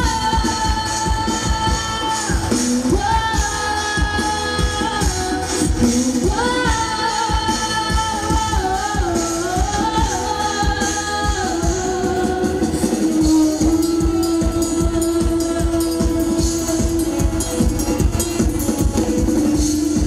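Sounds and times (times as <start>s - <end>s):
drum kit beat: 0.0s - 20.0s
woman singing into microphone: 0.0s - 20.0s.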